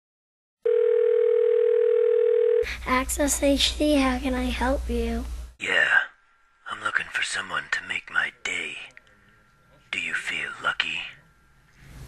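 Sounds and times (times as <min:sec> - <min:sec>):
telephone ringback tone: 0:00.6 - 0:02.7.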